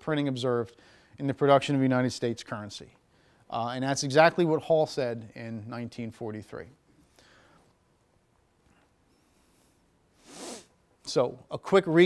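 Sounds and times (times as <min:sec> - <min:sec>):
man speaking: 0:00.0 - 0:06.8, 0:11.0 - 0:12.0
man's sharp in-breath: 0:00.8 - 0:01.2, 0:07.0 - 0:07.7, 0:09.3 - 0:10.7.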